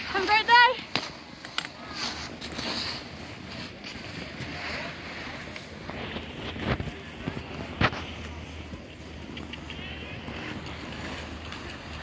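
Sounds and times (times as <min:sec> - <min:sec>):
constant low rumble: 0:00.0 - 0:12.0
faint distant voices: 0:00.0 - 0:12.0.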